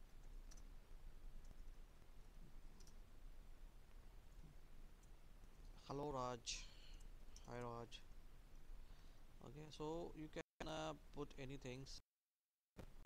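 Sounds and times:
faint keyboard clicks: 0.0 - 0.7, 1.4 - 3.0.

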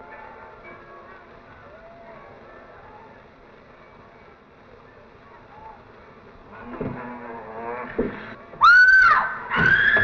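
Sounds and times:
low growling: 6.4 - 8.4
woman screaming in terror: 8.6 - 10.0.

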